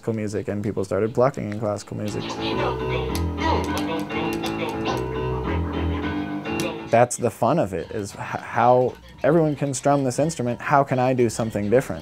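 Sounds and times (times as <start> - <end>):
vinyl record scratching: 0.4 - 12.0
music loop: 1.6 - 12.0
deep bass notes: 2.1 - 7.0.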